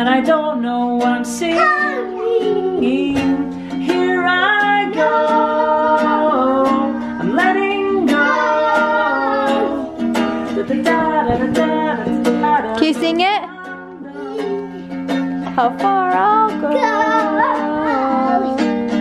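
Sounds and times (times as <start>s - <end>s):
man singing: 0.0s - 14.9s, 15.5s - 19.0s
out of tune ukulele strumming: 0.0s - 19.0s.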